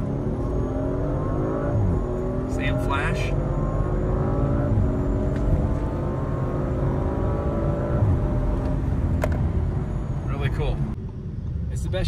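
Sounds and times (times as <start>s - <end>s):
car engine accelerating: 0.0s - 11.6s.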